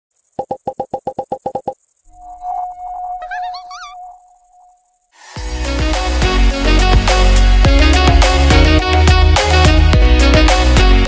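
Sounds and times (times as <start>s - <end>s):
short electronic blips: 0.4s - 5.1s
warbling electronic chirps: 0.4s - 5.2s
high electronic trill: 2.1s - 4.7s
held synth tone: 2.1s - 5.1s.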